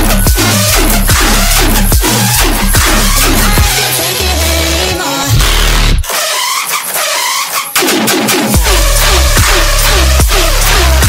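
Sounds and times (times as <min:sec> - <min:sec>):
dubstep music: 0:00.0 - 0:11.0.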